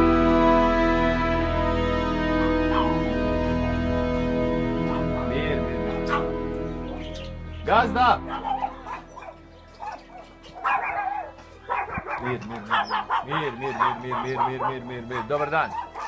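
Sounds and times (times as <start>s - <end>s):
background music: 0.0s - 16.0s
dog barking: 2.7s - 3.1s, 4.9s - 5.2s, 5.9s - 7.0s, 8.2s - 16.0s.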